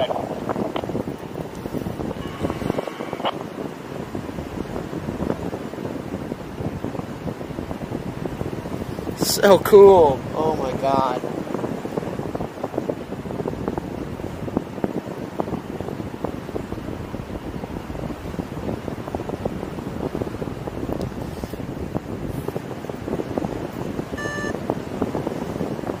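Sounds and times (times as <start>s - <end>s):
wind buffeting microphone: 0.0s - 26.0s
short electronic beep: 2.2s - 3.3s, 24.2s - 24.6s.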